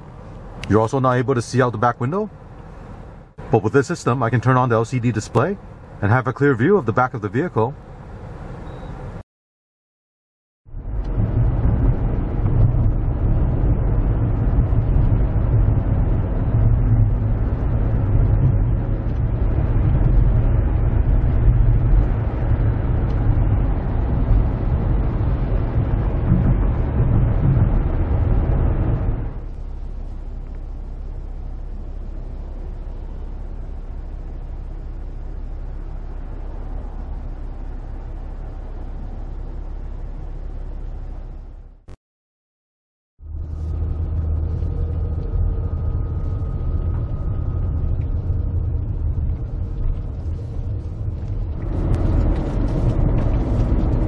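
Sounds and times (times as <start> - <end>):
road and engine rumble in car: 0.0 - 9.2, 10.7 - 42.0, 43.2 - 54.0.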